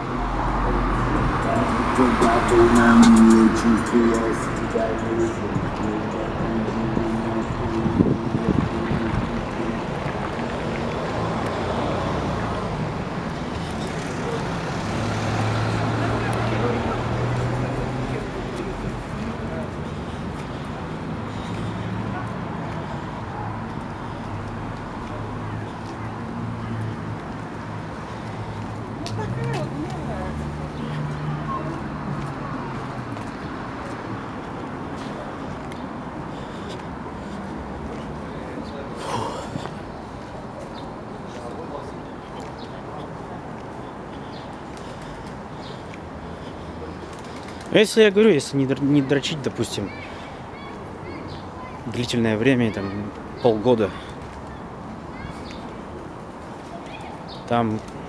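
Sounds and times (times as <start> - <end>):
passing vehicles: 0.0 - 58.0
traffic rushing: 0.0 - 58.0
low engine hum: 0.1 - 10.6.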